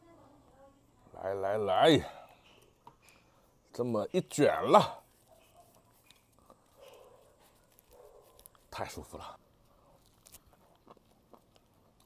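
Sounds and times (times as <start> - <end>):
faint chewing with mouth clicks: 5.0 - 12.0.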